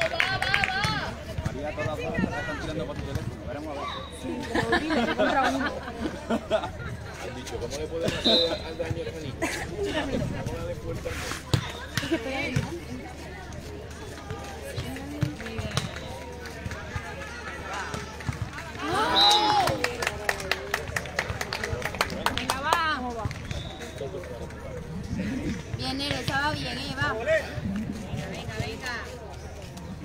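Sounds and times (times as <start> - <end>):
people calling out: 18.8 - 19.8.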